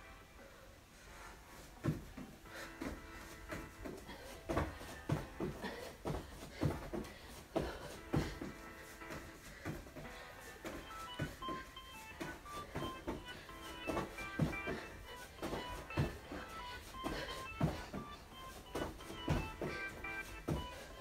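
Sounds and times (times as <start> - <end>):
music with bright melody: 0.0 - 21.0
feet thudding on carpet: 1.5 - 21.0.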